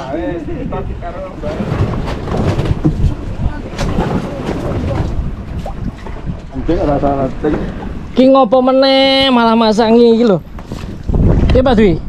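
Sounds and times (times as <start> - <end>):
sea washing around boat: 0.0 - 12.0
wind buffeting microphone: 0.0 - 12.0.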